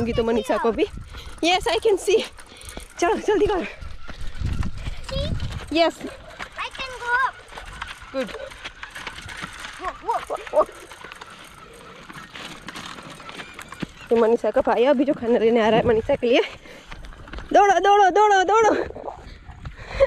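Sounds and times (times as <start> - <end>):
bicycle rolling over dirt: 0.0 - 20.0.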